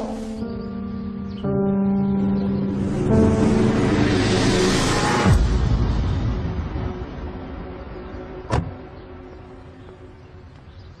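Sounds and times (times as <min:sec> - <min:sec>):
background music: 0:00.0 - 0:11.0
car door shutting: 0:08.5 - 0:08.8.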